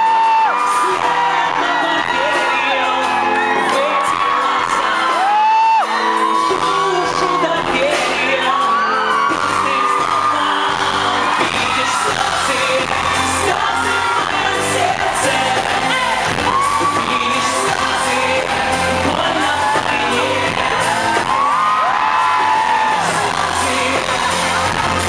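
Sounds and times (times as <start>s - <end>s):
man singing into microphone: 0.0s - 25.0s.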